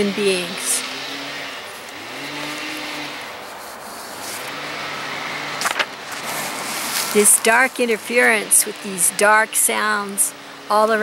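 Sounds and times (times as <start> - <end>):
motor engine running: 0.0 - 11.0.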